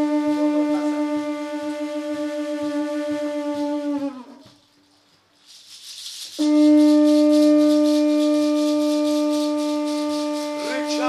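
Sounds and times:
wind instrument low note: 0:00.0 - 0:04.6, 0:06.4 - 0:11.0
shaken rattle: 0:04.6 - 0:11.0.

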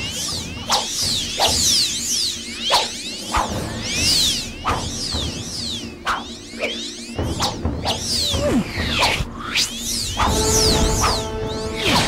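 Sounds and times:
background music: 0:03.2 - 0:12.0.

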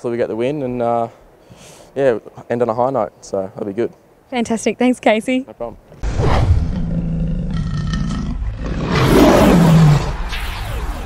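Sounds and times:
low rumble: 0:06.0 - 0:11.0
lion roar: 0:06.1 - 0:10.3.

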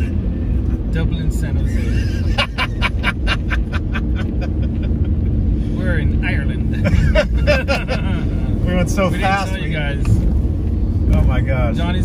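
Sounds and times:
car cabin road noise: 0:00.0 - 0:12.0
man laughing: 0:01.6 - 0:05.5, 0:06.7 - 0:08.5.

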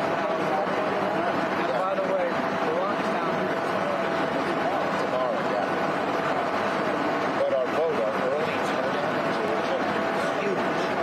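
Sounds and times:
aircraft engine noise: 0:00.0 - 0:11.0
thin steady whine: 0:00.0 - 0:11.0
man talking: 0:00.1 - 0:06.6, 0:07.3 - 0:11.0.

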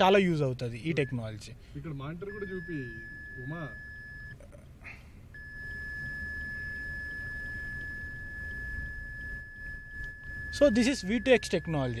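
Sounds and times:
high-pitched electronic whine: 0:02.2 - 0:04.4, 0:05.4 - 0:12.0.

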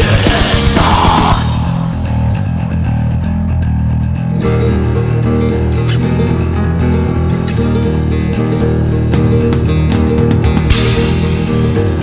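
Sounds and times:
plucked guitar over bass: 0:00.0 - 0:12.0.

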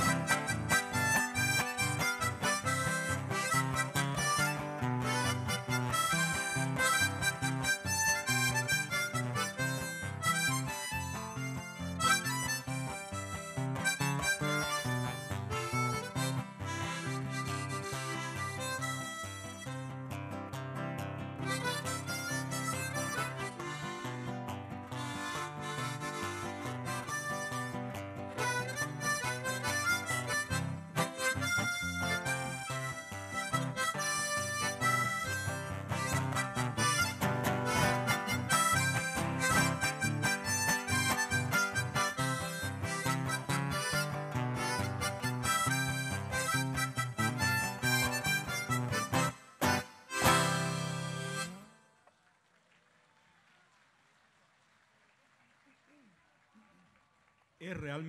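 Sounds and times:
harmonica playing fast tune: 0:00.0 - 0:51.9.

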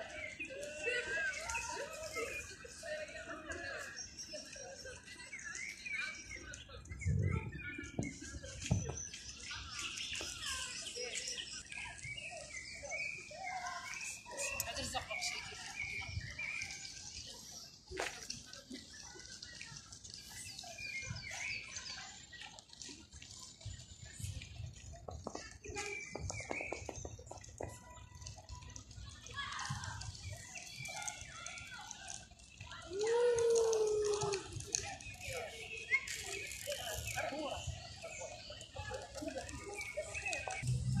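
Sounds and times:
birds chirping: 0:00.0 - 0:41.0
people's voices: 0:00.0 - 0:41.0.

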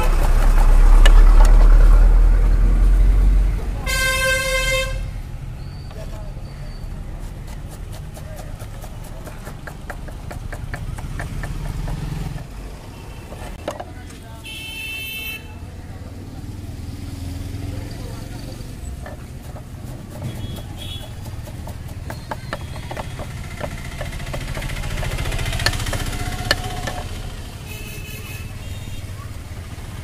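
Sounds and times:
road traffic hum: 0:00.0 - 0:30.0
knife chopping on wooden board: 0:07.2 - 0:12.5, 0:19.0 - 0:27.1.

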